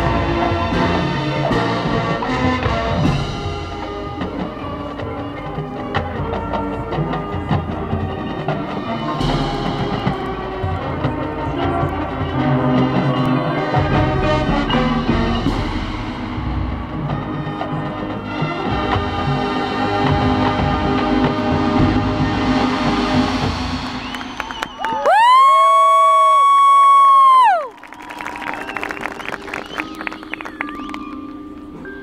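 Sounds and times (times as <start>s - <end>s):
mallet percussion: 0.0s - 24.2s, 29.4s - 32.0s
marching band with brass and drums: 0.0s - 32.0s.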